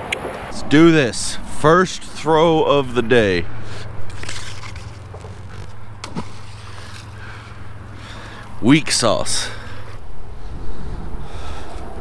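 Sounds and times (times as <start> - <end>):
road traffic hum: 0.0 - 12.0.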